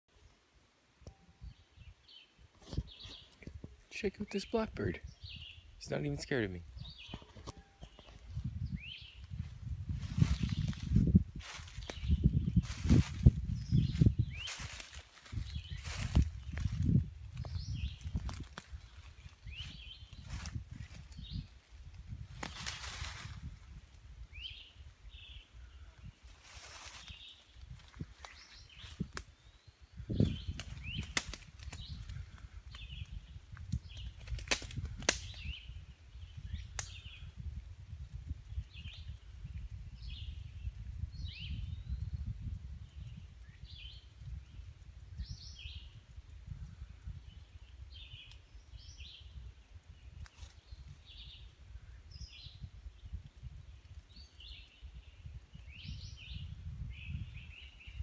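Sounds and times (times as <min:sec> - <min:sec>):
footsteps through undergrowth: 0:09.2 - 0:21.6, 0:22.2 - 0:23.6, 0:26.2 - 0:29.1
twigs snapping: 0:14.4 - 0:19.4, 0:21.9 - 0:23.3, 0:26.4 - 0:29.4, 0:30.2 - 0:35.6, 0:36.6 - 0:37.2.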